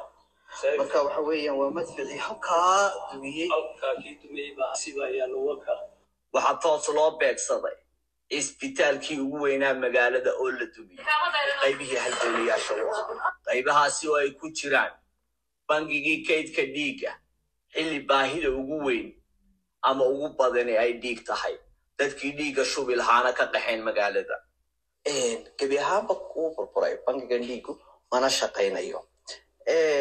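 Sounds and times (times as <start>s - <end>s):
person talking: 0.0s - 5.8s, 8.3s - 14.8s, 25.1s - 30.0s.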